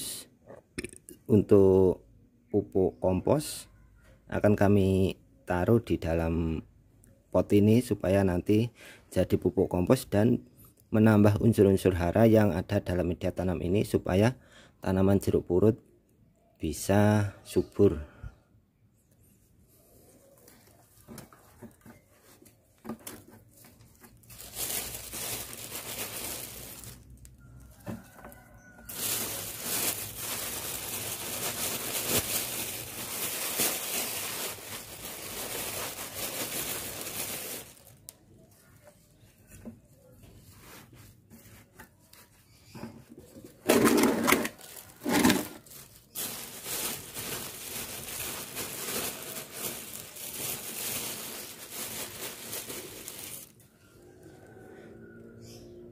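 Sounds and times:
dry onion skins rustling: 0:19.8 - 0:39.6, 0:40.2 - 0:53.8.

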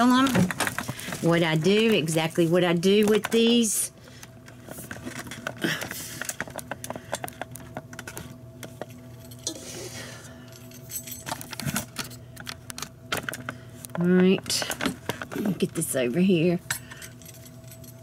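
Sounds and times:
kitchen things clicking and clinking: 0:00.0 - 0:03.9
steady low hum: 0:00.0 - 0:18.0.

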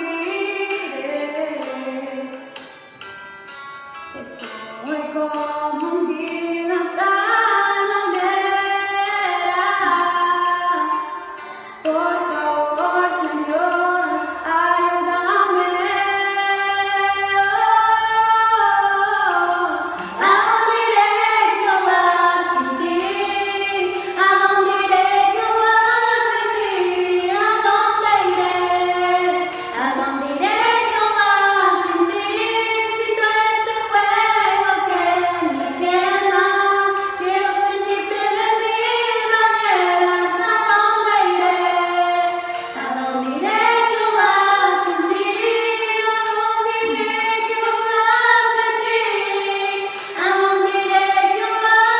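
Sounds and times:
young women singing worship song: 0:00.0 - 0:02.6, 0:04.1 - 0:11.2, 0:11.8 - 0:51.9.

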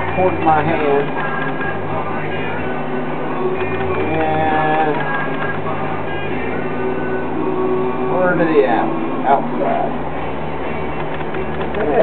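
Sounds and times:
potter's wheel humming: 0:00.0 - 0:12.0.

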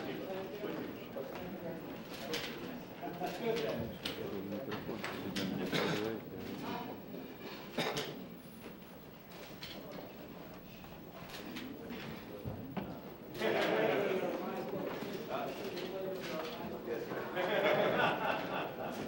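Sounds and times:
indistinct conversation: 0:00.0 - 0:19.0.

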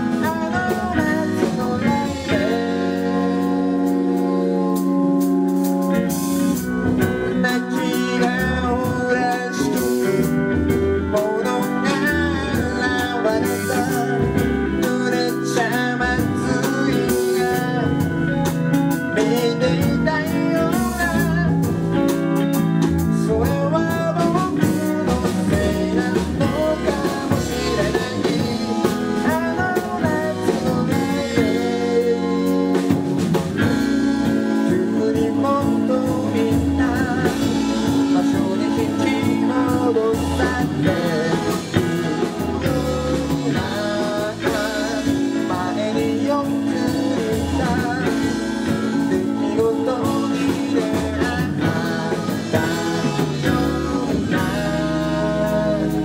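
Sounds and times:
drums: 0:00.0 - 0:56.0
electric bass: 0:00.0 - 0:56.0
electric guitar lead line: 0:00.0 - 0:56.0
organ chords: 0:00.0 - 0:56.0.

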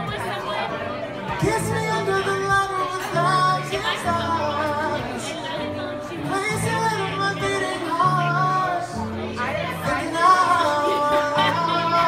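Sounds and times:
acoustic guitar chords: 0:00.0 - 0:12.0
man singing into microphone: 0:01.2 - 0:12.0.

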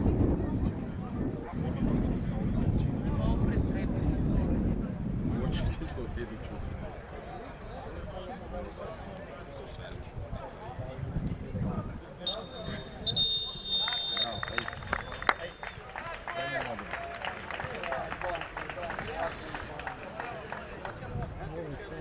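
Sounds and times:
referee's whistle blowing: 0:12.2 - 0:15.8
players shouting: 0:12.3 - 0:17.5.

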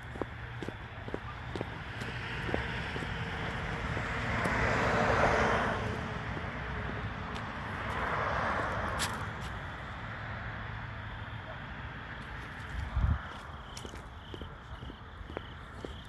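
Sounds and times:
vehicles passing by: 0:00.0 - 0:16.0.

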